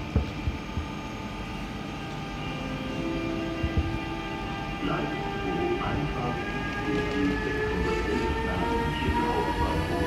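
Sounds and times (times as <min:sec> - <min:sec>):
electric locomotive whining: 0:00.0 - 0:10.0.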